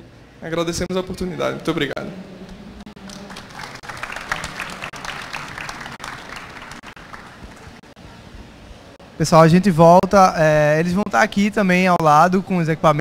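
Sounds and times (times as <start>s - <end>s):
audience applauding: 3.0s - 8.0s.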